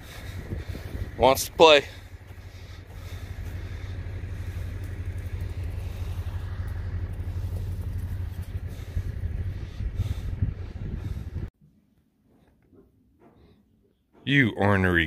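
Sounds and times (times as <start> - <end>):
low rumble: 0.0 - 11.5.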